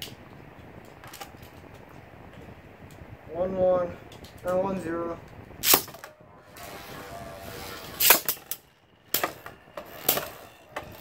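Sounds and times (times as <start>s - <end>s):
spinning tops launched crack: 5.6s - 6.9s, 7.7s - 10.5s
spinning tops whirring: 5.6s - 11.0s.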